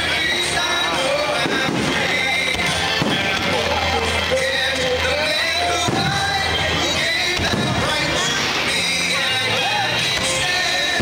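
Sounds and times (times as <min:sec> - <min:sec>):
music: 0:00.0 - 0:11.0
fireworks booming: 0:01.1 - 0:08.8.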